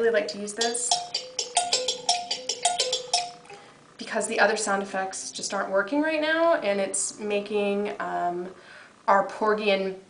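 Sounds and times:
toy playing music-box tune: 0:00.9 - 0:03.6.

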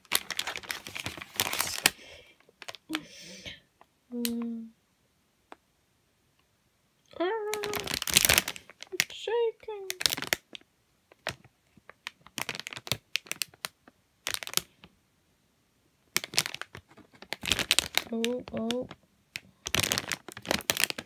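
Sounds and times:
plastic bag crinkling: 0:00.0 - 0:03.1, 0:07.4 - 0:09.2, 0:09.8 - 0:14.8, 0:16.1 - 0:21.0.

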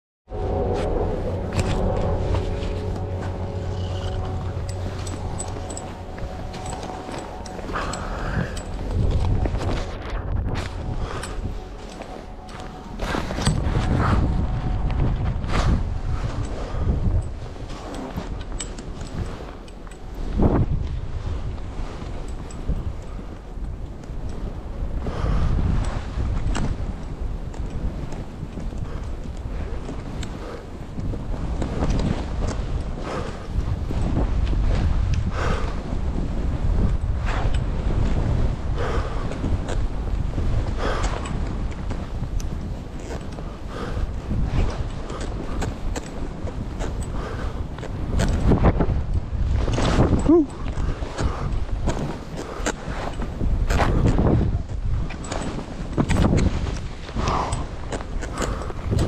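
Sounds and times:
wind buffeting microphone: 0:00.3 - 0:59.0.

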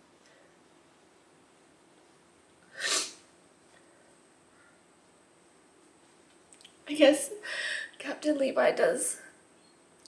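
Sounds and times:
woman sniffing while crying: 0:02.7 - 0:03.2.

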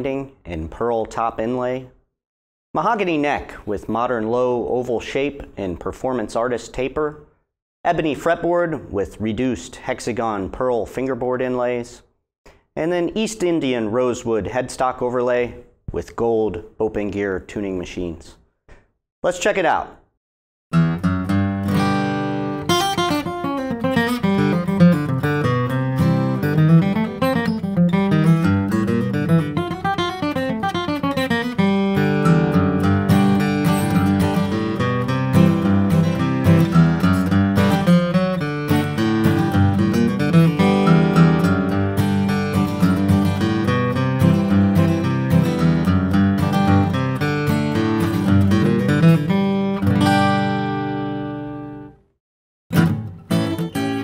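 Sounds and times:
flatpicked acoustic guitar: 0:20.7 - 0:52.0, 0:52.7 - 0:54.0.

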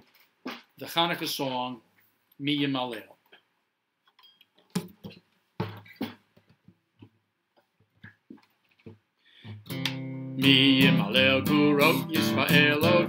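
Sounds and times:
acoustic guitar notes plucked: 0:09.6 - 0:13.0.

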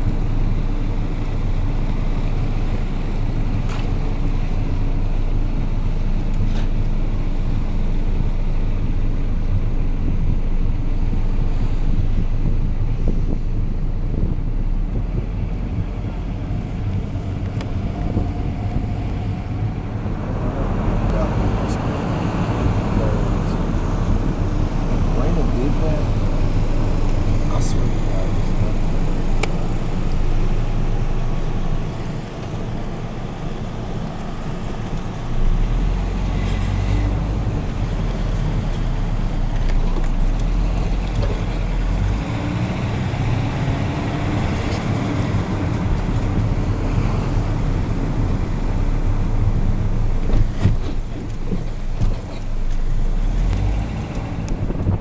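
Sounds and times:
car driving slowly: 0:00.0 - 0:55.0
road noise inside car cabin: 0:00.0 - 0:55.0.

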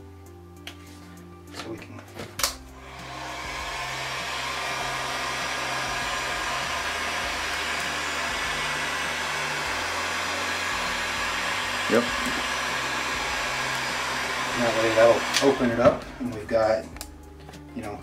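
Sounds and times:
heat gun blowing: 0:02.8 - 0:16.6.

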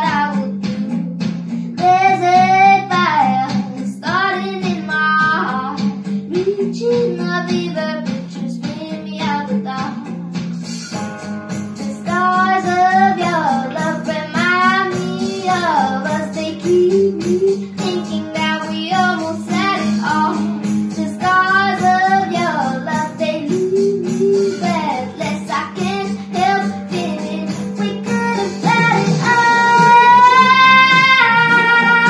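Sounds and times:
girl singing: 0:00.0 - 0:01.1, 0:01.7 - 0:10.2, 0:11.8 - 0:32.0
guitar accompaniment: 0:00.0 - 0:32.0.

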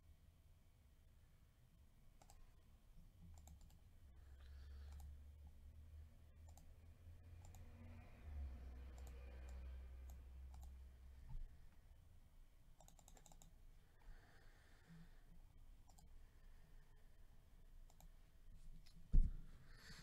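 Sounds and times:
computer mouse clicks: 0:02.2 - 0:02.4, 0:03.3 - 0:03.8, 0:04.7 - 0:05.2, 0:06.4 - 0:06.8, 0:07.4 - 0:07.7, 0:08.9 - 0:10.8, 0:12.8 - 0:13.6, 0:15.8 - 0:16.2, 0:17.8 - 0:18.2.

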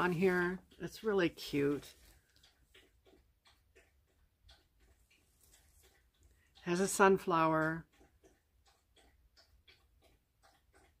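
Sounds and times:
faint soft ticks: 0:00.0 - 0:11.0.

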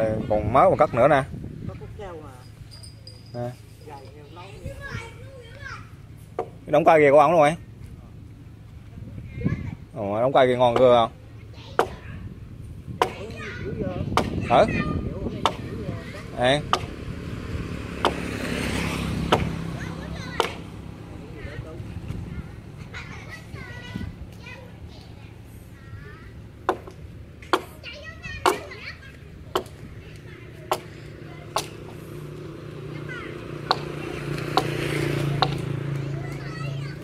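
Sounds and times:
motorcycle passing: 0:00.0 - 0:37.0
children calling out: 0:04.6 - 0:06.1, 0:18.1 - 0:21.0, 0:22.3 - 0:26.8, 0:27.6 - 0:37.0
hewing tool chopping wooden log: 0:11.8 - 0:12.0, 0:13.0 - 0:13.4, 0:14.1 - 0:14.4, 0:15.4 - 0:15.7, 0:16.6 - 0:17.0, 0:18.0 - 0:18.5, 0:19.3 - 0:19.6, 0:20.4 - 0:20.7, 0:26.6 - 0:27.8, 0:28.4 - 0:28.7, 0:29.5 - 0:29.8, 0:30.7 - 0:32.0, 0:33.6 - 0:35.7.

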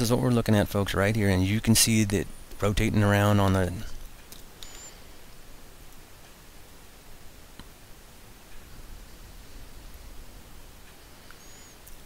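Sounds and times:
low hiss: 0:00.0 - 0:12.0
thin high whistle: 0:11.4 - 0:11.8.

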